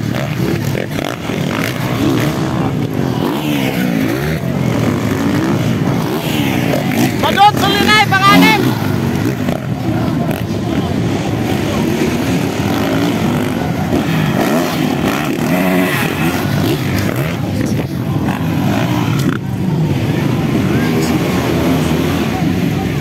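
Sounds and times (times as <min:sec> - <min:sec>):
dirt bike engines revving: 0:00.0 - 0:23.0
spectators' voices: 0:00.0 - 0:23.0.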